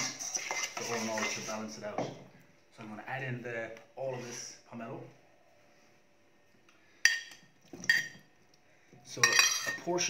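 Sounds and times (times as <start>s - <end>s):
kitchenware clinking: 7.0s - 8.3s, 9.2s - 10.0s.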